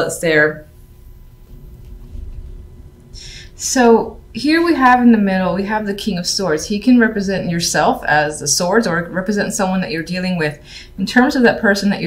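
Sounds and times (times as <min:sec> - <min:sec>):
faint low rumble: 0:00.6 - 0:06.3.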